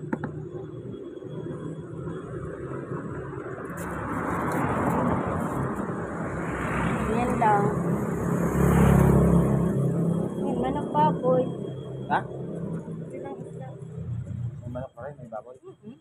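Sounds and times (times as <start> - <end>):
motorcycle passing: 0.0 - 15.4
motor vehicles passing: 0.0 - 15.9.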